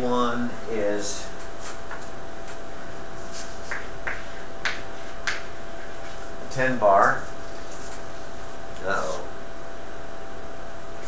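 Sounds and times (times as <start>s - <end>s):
steady hum: 0.0s - 11.0s
chalk tapping on chalkboard: 3.3s - 5.9s.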